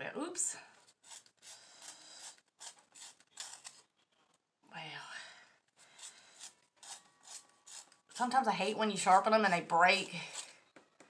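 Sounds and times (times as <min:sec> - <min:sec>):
pencil sharpener rasping scrapes: 0:00.8 - 0:03.9, 0:05.8 - 0:10.6.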